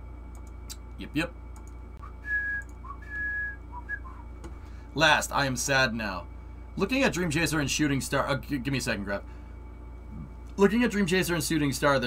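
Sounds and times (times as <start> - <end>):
person whistling: 2.0 - 4.3.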